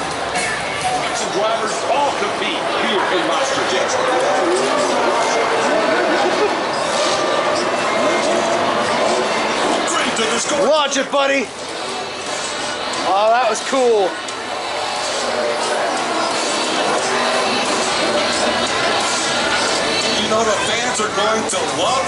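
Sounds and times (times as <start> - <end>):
people chattering: 0.0 - 22.0.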